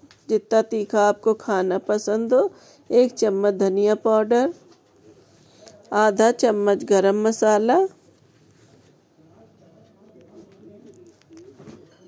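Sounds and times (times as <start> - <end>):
pigeon cooing: 4.7 - 5.9, 10.2 - 12.0.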